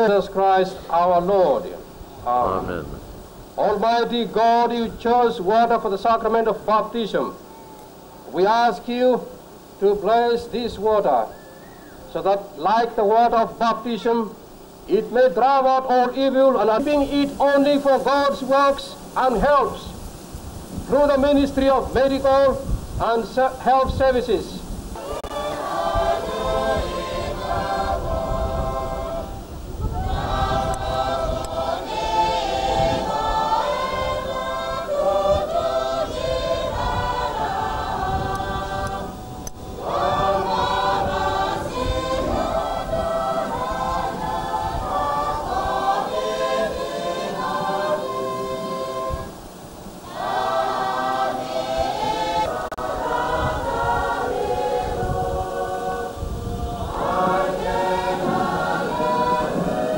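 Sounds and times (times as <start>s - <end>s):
church choir singing: 24.9s - 59.9s.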